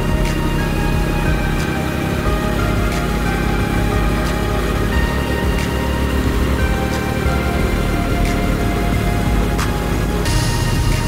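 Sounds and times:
background music with held notes: 0:00.0 - 0:11.0
sharp hit: 0:00.0 - 0:11.0.

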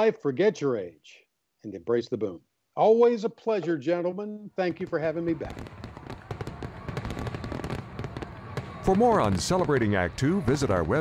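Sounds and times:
fireworks crackling and popping: 0:04.7 - 0:11.0.

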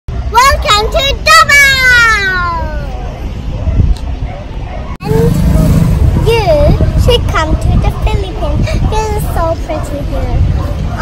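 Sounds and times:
girl shouting: 0:00.4 - 0:03.0
low rumbling noise: 0:04.5 - 0:11.0.

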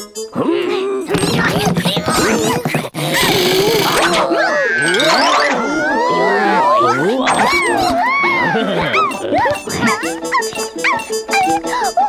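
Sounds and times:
cartoon creatures squeaky cries: 0:01.8 - 0:12.0
background music: 0:04.0 - 0:12.0.

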